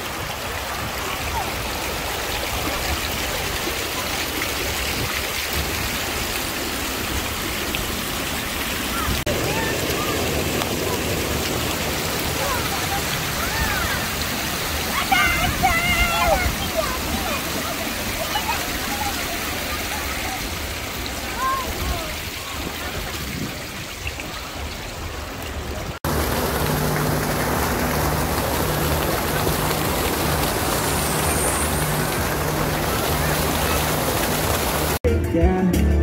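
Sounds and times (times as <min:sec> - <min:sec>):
fountain water splashing: 0:00.0 - 0:35.0.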